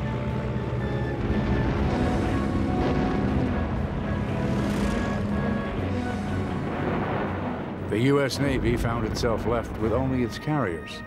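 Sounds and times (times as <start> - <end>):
propeller aircraft engine drone: 0.0 - 7.9
sustained music score: 0.0 - 11.0.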